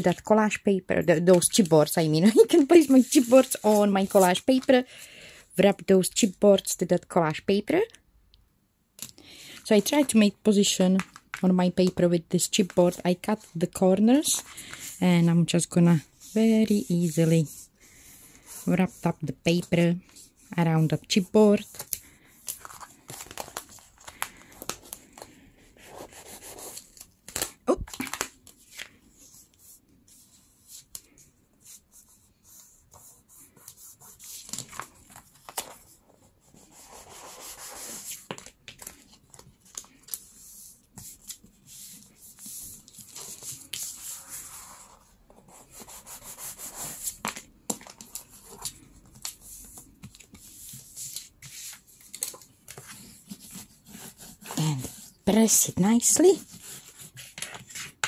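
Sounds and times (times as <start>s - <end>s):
paper rustling and crinkling: 1.3s - 4.9s, 21.6s - 29.5s, 32.9s - 55.2s, 56.2s - 58.0s.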